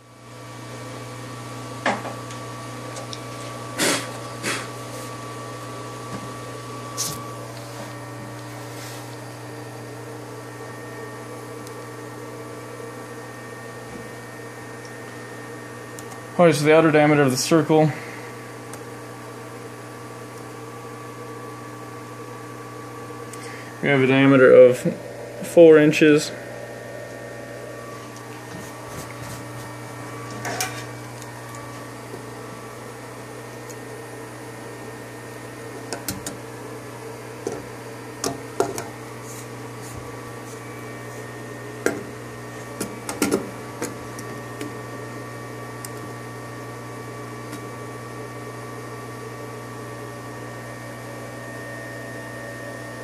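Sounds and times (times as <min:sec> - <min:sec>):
steady machine hum: 0:00.0 - 0:53.0.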